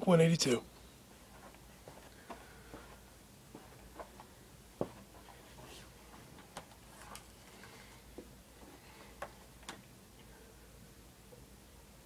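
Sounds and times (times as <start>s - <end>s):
low steady room hum: 0.0s - 12.0s.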